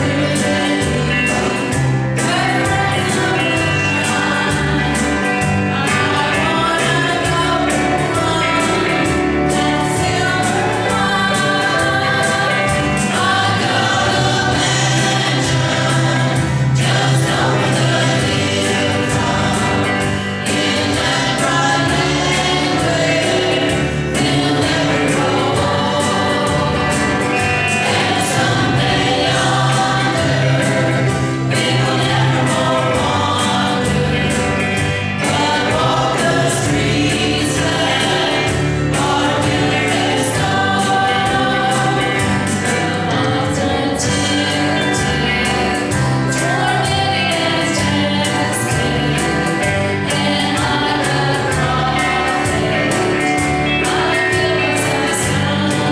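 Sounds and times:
band with guitars keyboard and drums: 0:00.0 - 0:55.9
group singing gospel in harmony: 0:00.0 - 0:55.9.

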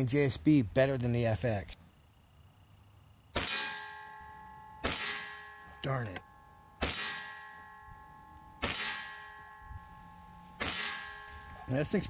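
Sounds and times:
long metallic ringing: 0:03.5 - 0:12.0
air rifle shot crack: 0:10.6 - 0:11.2.

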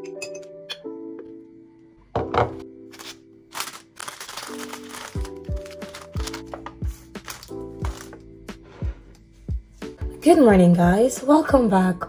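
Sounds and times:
lo-fi music with sustained chords: 0:00.0 - 0:12.0
object thunking on worktop: 0:02.2 - 0:02.6
wrapper crinkling and rustling: 0:02.9 - 0:08.2.

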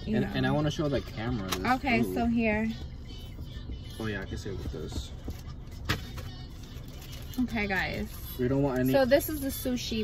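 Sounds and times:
car interior hum: 0:00.0 - 0:10.0
paper wrappers crinkling: 0:06.2 - 0:08.0.

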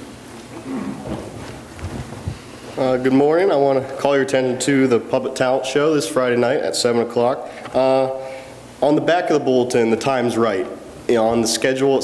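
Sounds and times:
footsteps with dull low thuds: 0:00.4 - 0:02.8.

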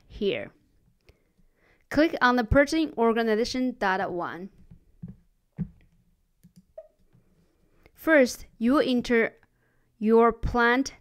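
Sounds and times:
computer mouse clicks: 0:06.4 - 0:07.1.

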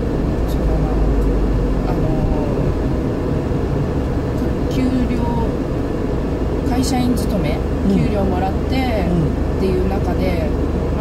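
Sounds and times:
road and engine rumble: 0:00.0 - 0:11.0.

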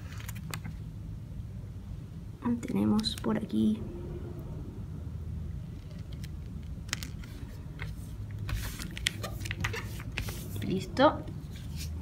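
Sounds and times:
steady low rumble: 0:00.8 - 0:08.4
paper handling: 0:05.9 - 0:10.8.

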